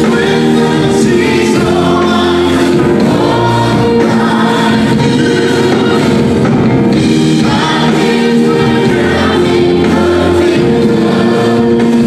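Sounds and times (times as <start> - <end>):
women singing: 0.0 - 6.2, 7.4 - 12.0
bass guitar: 0.0 - 12.0
electric guitar: 0.0 - 12.0
keyboards: 0.0 - 12.0.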